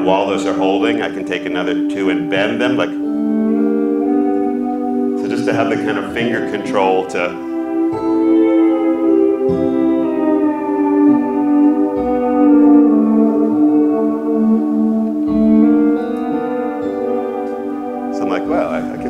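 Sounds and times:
sliding guitar-like notes: 0.0 - 19.0.

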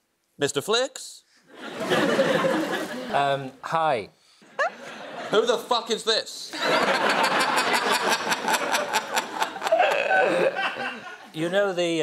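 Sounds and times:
audience laughing: 1.5 - 3.3, 4.5 - 5.7, 6.5 - 11.4.

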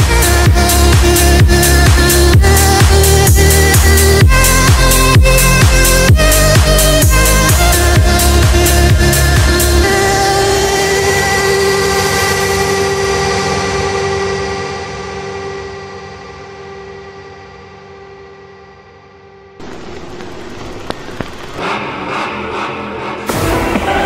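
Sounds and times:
hissing noise build-up: 19.6 - 21.6.

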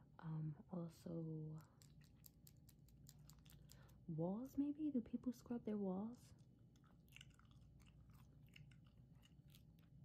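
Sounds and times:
gum chewing: 1.8 - 3.9, 6.7 - 10.0.

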